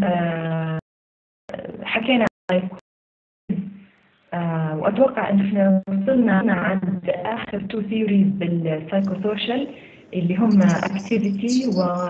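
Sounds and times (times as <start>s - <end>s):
woman speaking: 4.4s - 12.0s.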